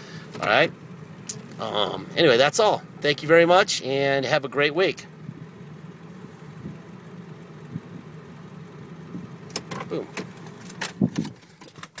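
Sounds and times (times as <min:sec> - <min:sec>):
diesel engine idling: 0:00.0 - 0:11.6.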